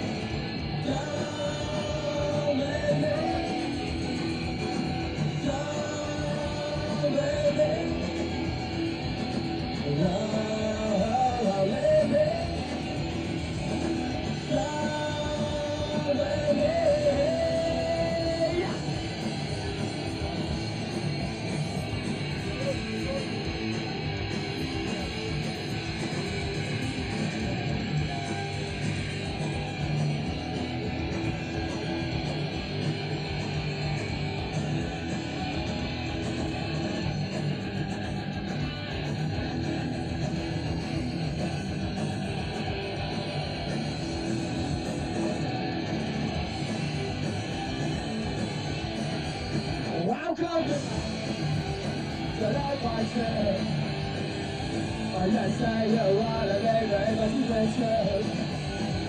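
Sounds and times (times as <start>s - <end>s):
punk rock band playing live: 0.0s - 59.0s.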